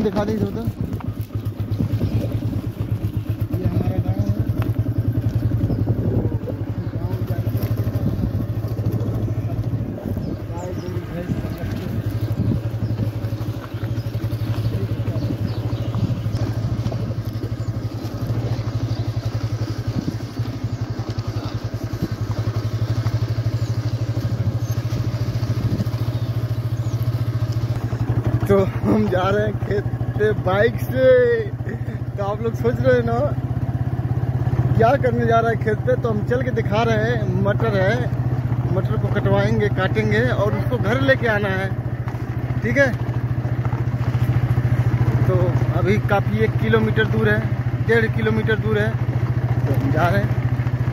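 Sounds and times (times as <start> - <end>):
motorcycle engine running: 0.0 - 50.9.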